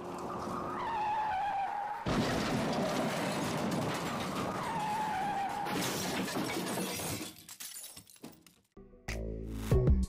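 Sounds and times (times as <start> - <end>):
tyres skidding with a squeal: 0.2 - 6.9
glass shattering: 5.6 - 8.6
clinks of debris: 5.7 - 8.7.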